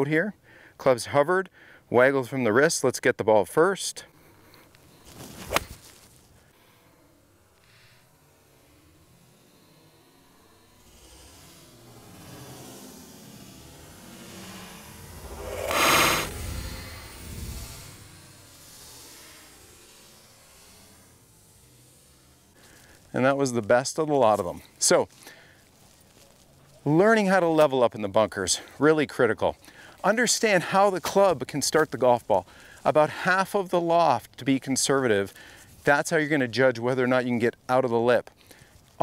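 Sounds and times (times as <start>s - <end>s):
golf club hitting ball from sand: 5.1s - 6.0s.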